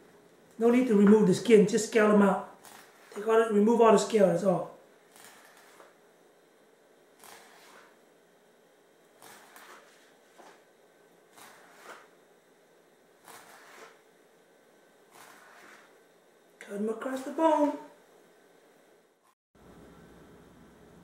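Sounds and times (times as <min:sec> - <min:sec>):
knife scraping cuts on fish: 0:09.2 - 0:10.1, 0:11.4 - 0:12.1, 0:13.2 - 0:14.0, 0:15.1 - 0:15.9.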